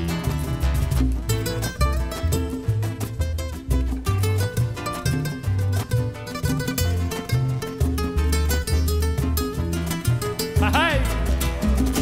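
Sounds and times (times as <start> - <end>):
deep bass notes: 0.0 - 12.0
nylon-string guitar plucking: 0.0 - 12.0.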